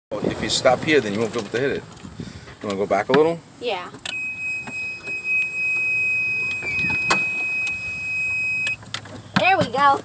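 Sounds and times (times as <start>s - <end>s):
reverse warning buzzer: 4.1s - 8.8s.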